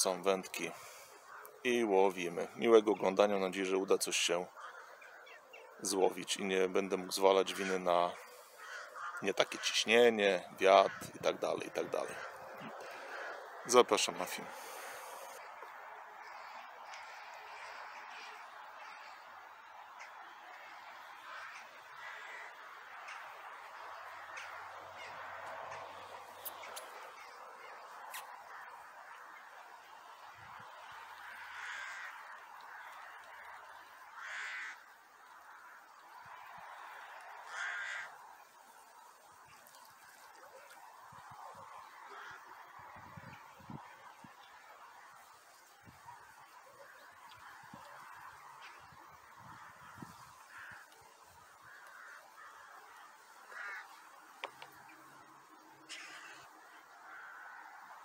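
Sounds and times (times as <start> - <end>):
loud bird calls: 4.4 - 58.0.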